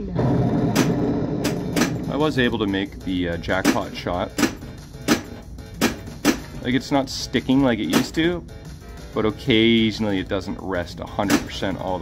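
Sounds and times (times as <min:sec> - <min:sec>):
synthesized pinball game sound: 0:00.0 - 0:08.3.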